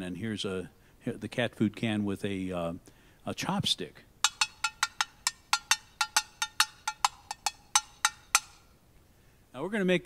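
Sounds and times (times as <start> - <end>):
chopstick tapping metal can: 4.2 - 8.7.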